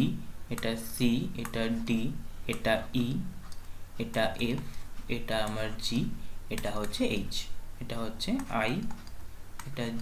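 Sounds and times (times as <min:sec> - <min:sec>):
person speaking letter names: 0:04.0 - 0:09.0, 0:09.7 - 0:10.0.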